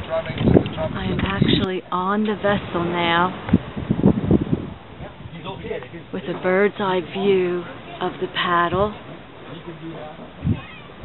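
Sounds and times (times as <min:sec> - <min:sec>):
faint voices: 0:04.8 - 0:11.0.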